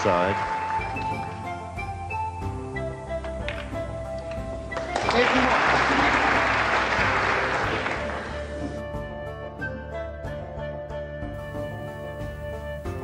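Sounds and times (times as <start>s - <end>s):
audience applause: 0.0s - 1.6s, 4.3s - 8.6s
background music sustained notes: 0.0s - 13.0s.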